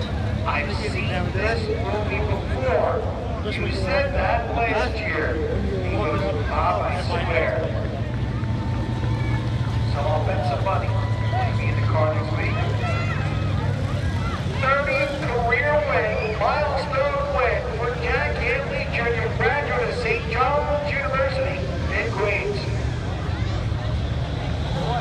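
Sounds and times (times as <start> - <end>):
indistinct talking: 0.0 - 25.0
race car engine idling: 0.0 - 25.0.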